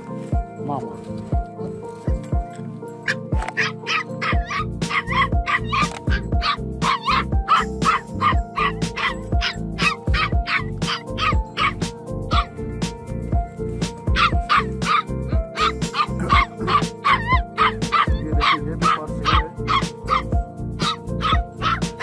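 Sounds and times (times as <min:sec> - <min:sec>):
background music with beat: 0:00.0 - 0:22.0
dog yipping: 0:03.0 - 0:12.6, 0:14.1 - 0:22.0.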